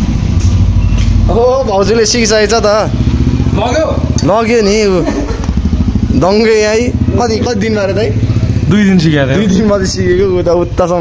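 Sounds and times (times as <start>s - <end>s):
motorcycle engine running: 0.0s - 11.0s
men talking: 1.2s - 11.0s.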